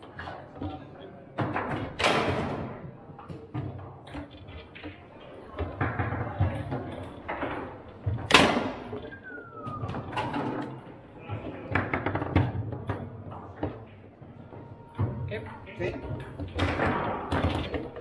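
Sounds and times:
foosball ball clacking: 11.6s - 14.0s.

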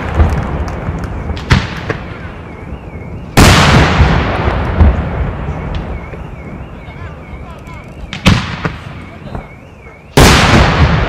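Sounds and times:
fireworks bangs: 0.0s - 11.0s
faint wavering whistle: 2.1s - 3.4s, 5.3s - 10.2s.

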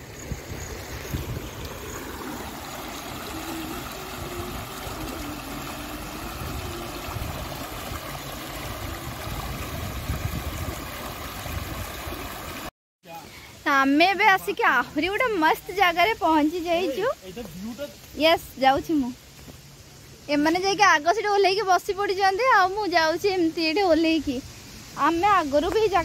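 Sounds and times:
stream rushing over stones: 0.0s - 13.3s.

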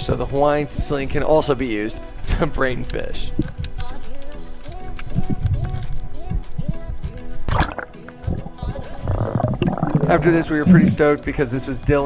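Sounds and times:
low beat: 7.5s - 11.2s.

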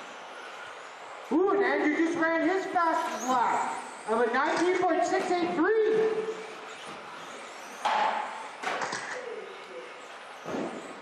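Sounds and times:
rc cars running: 0.0s - 11.0s
rc cars thudding on track: 4.0s - 9.2s, 10.0s - 11.0s.

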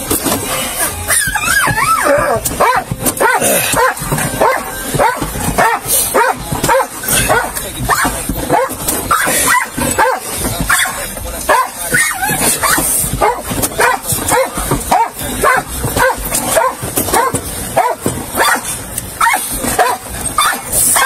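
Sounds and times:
dog whining and yipping: 0.8s - 10.1s, 19.2s - 21.0s.

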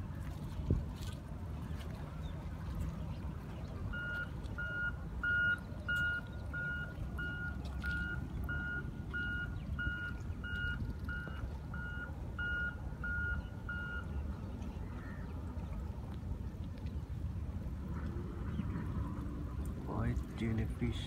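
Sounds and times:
low background rumble: 0.0s - 21.0s
reversing alarm beeping: 3.9s - 14.1s.

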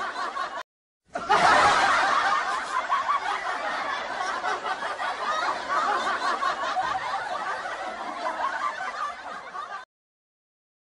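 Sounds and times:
people laughing: 0.0s - 9.9s.

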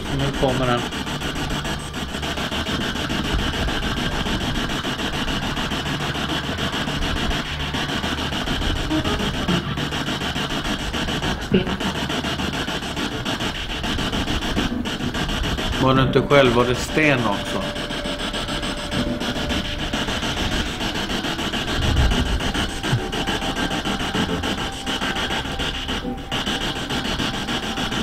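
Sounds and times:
chopped radio static: 0.0s - 28.0s.

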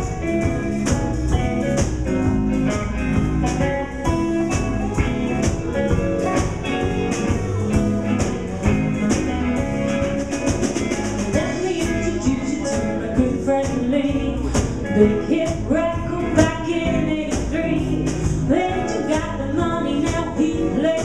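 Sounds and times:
blues band playing: 0.0s - 21.0s.

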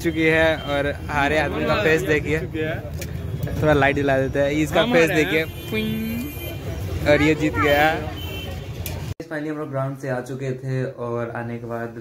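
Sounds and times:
road traffic rumble: 0.0s - 9.2s
voices on a street: 0.0s - 10.3s.

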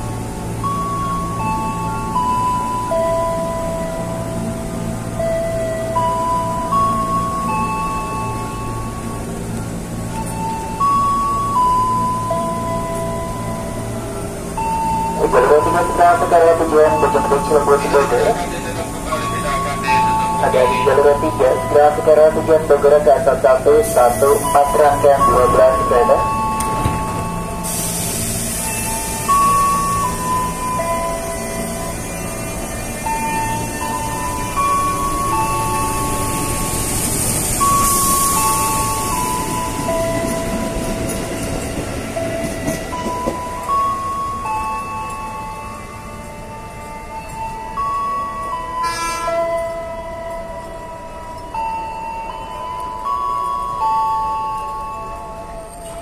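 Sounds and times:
background music melody: 0.0s - 56.0s
electric train rumbling: 0.0s - 56.0s.

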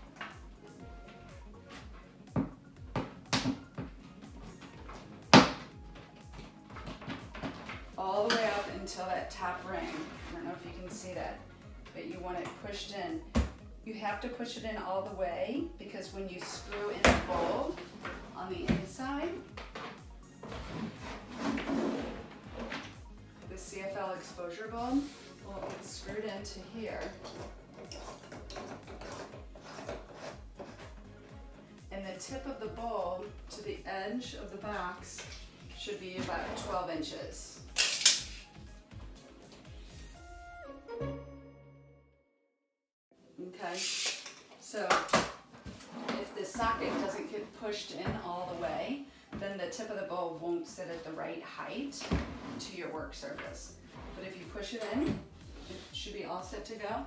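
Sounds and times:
background music with steady beat: 0.0s - 42.0s, 43.1s - 57.0s.

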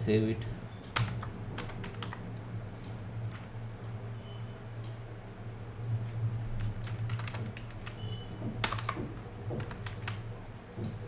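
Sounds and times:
steady low hum: 0.0s - 11.0s
keyboard keys clicking: 0.9s - 2.2s, 6.0s - 11.0s.

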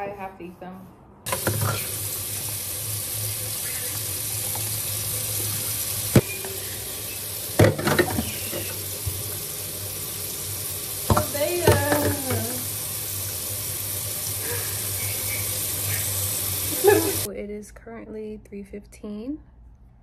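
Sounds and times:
tap running into sink: 1.3s - 2.6s, 3.6s - 14.0s.

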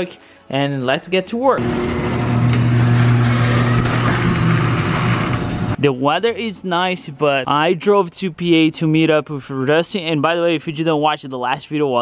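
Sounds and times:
garage door moving in tracks: 1.6s - 5.8s
garage door opener motor hum: 1.6s - 5.8s.

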